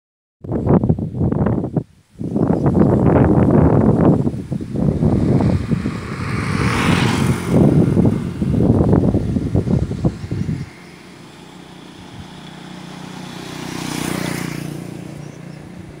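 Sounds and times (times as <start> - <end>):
wind buffeting microphone: 0.4 - 16.0
steady outdoor hiss: 0.5 - 16.0
road vehicle passing: 3.6 - 16.0.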